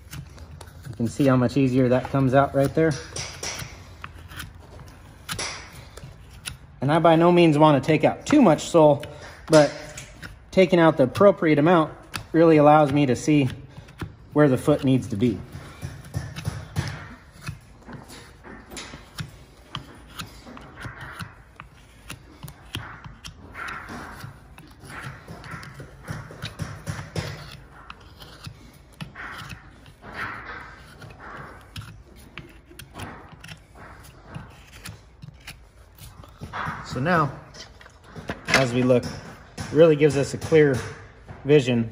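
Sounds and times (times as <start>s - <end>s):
hoof knife scraping: 0.0s - 41.8s.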